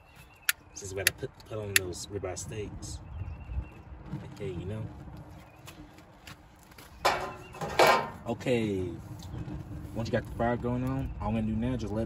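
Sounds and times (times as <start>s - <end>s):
flames burning on charcoal: 8.2s - 12.0s.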